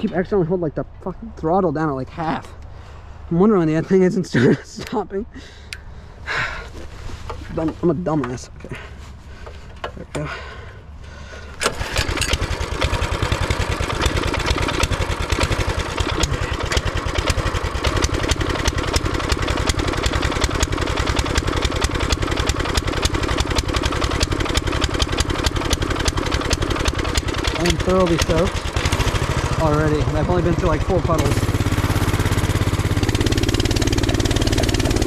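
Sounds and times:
small engine idling: 5.7 - 35.0.

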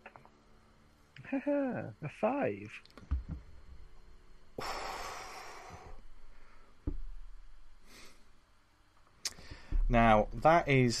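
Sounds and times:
person sighing: 4.6 - 6.0.

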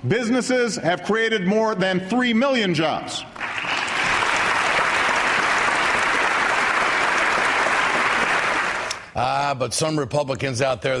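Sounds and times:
audience applauding: 3.4 - 9.1.

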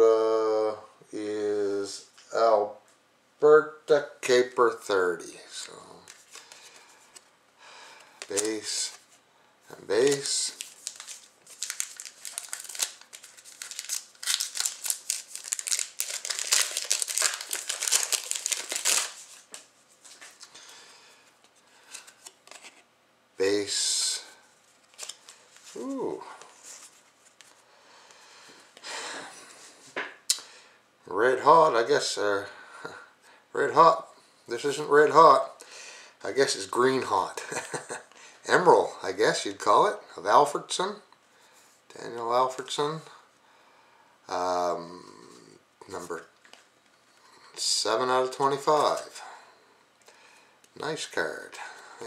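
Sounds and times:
trading cards rustling and clicking: 8.0 - 9.0, 10.0 - 20.6, 24.7 - 27.6.

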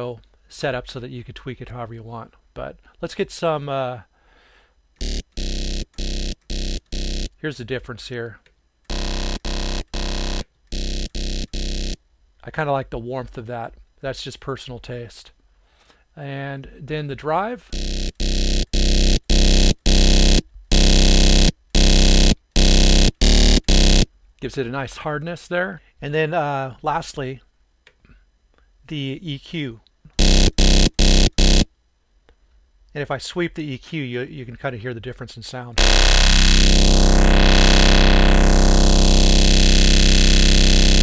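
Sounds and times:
buzzy synthesizer notes: 5.0 - 7.3, 8.9 - 12.0, 17.7 - 24.1, 30.2 - 31.7, 35.8 - 41.0.

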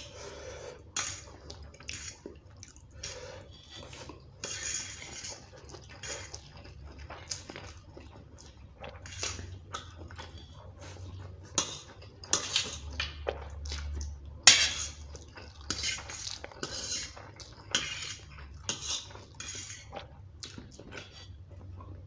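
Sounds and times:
noodles slurped: 0.6 - 12.9
fork scraping metal plate: 3.8 - 6.3, 14.5 - 15.0, 15.7 - 19.9.

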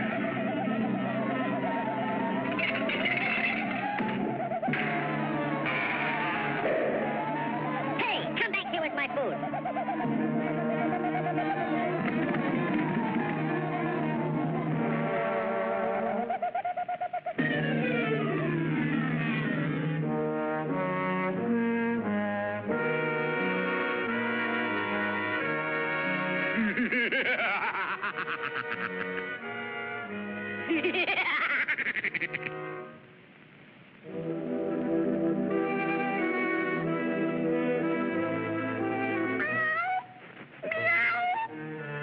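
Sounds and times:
orchestral cartoon music: 0.0 - 33.1, 34.0 - 42.0
brass playing held chords: 19.6 - 26.6, 29.0 - 30.8, 34.0 - 39.4
cartoon cat meows: 39.4 - 41.5.

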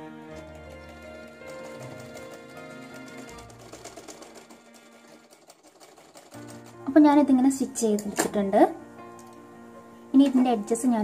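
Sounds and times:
sewing machine stitching: 0.4 - 7.0.

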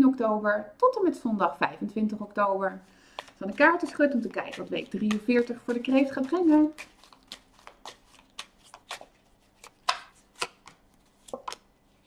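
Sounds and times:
cards being shuffled: 3.0 - 12.0.

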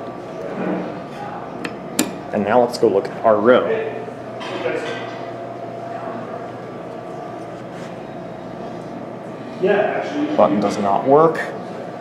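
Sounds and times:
indoor background hum: 0.0 - 12.0.

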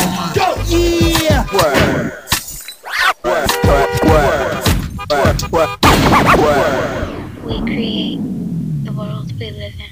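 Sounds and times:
hip hop beat: 0.0 - 8.2
vinyl scratching: 2.8 - 8.2.

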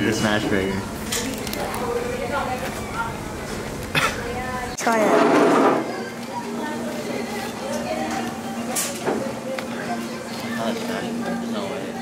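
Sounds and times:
steady low hum: 0.0 - 4.8
indistinct background voices: 0.0 - 12.0.

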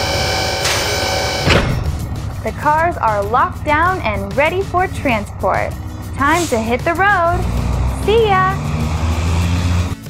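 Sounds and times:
steady background drone: 0.0 - 10.0
heavy clunk: 0.6 - 2.3.

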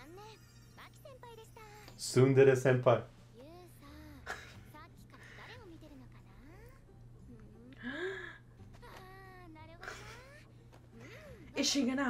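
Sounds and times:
high-pitched female voice speaking: 4.8 - 6.8, 11.6 - 12.0.

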